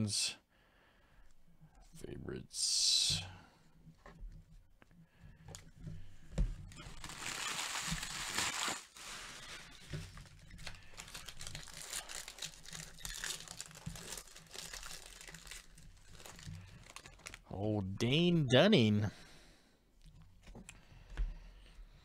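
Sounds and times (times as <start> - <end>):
foil wrapper crinkling: 6.7 - 17.5.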